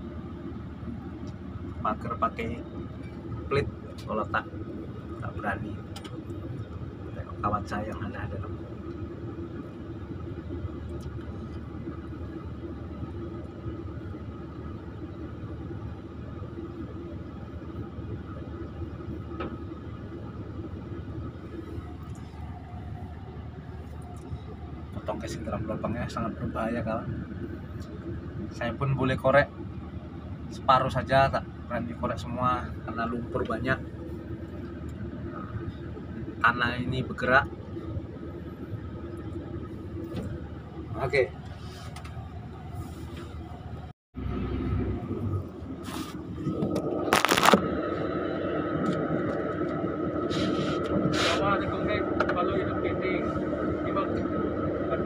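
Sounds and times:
diesel engine running: 0:00.0 - 0:55.0
faint constant hum: 0:00.0 - 0:55.0.

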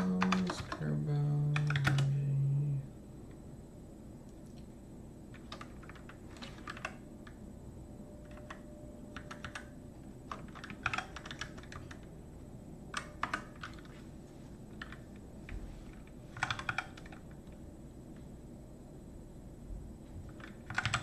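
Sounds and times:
keyboard typing: 0:00.0 - 0:00.9, 0:01.5 - 0:02.3, 0:05.3 - 0:07.4, 0:08.2 - 0:12.1, 0:12.9 - 0:14.0, 0:14.7 - 0:15.2, 0:15.9 - 0:17.6, 0:20.3 - 0:21.0
low background hum: 0:00.0 - 0:21.0.

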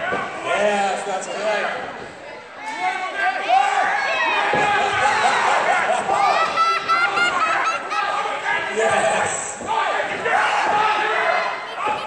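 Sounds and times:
spectators shouting: 0:02.8 - 0:12.0.

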